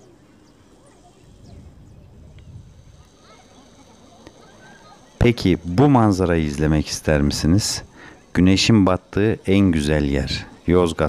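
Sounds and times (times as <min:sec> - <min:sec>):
distant bird calls: 0:00.0 - 0:11.0.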